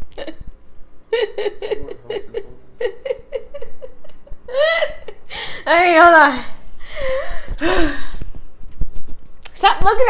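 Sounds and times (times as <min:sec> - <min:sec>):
woman laughing: 0:00.1 - 0:00.5, 0:01.1 - 0:06.0.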